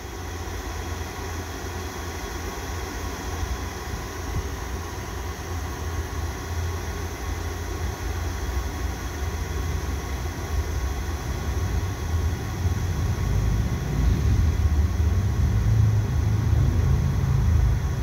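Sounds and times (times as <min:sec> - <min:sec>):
train rumbling: 0:12.1 - 0:18.0.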